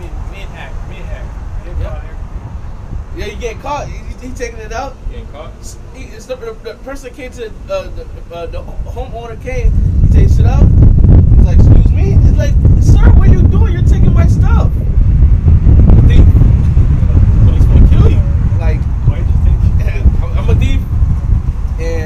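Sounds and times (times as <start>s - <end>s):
man talking: 0.0s - 2.2s, 3.1s - 10.7s, 11.4s - 15.0s, 16.0s - 16.6s, 17.4s - 20.9s, 21.8s - 22.0s
loud low rumble: 0.0s - 6.0s, 7.4s - 22.0s.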